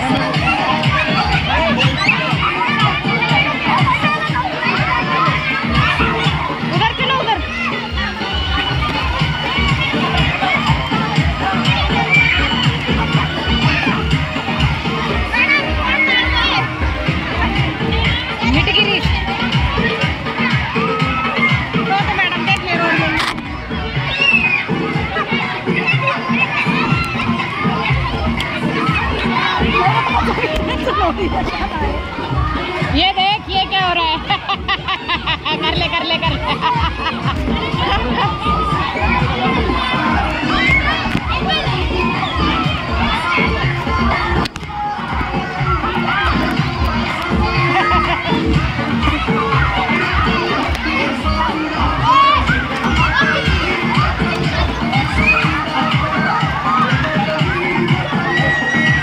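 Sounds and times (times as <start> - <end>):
children shouting: 0.0 - 59.0
music over loudspeakers: 0.0 - 59.0.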